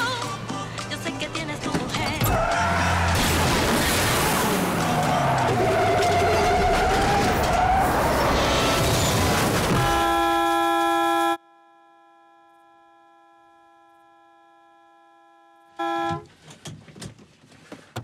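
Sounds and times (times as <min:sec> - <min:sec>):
truck sliding to a stop in dirt: 0:05.8 - 0:10.0
truck horn long blast: 0:09.8 - 0:16.3.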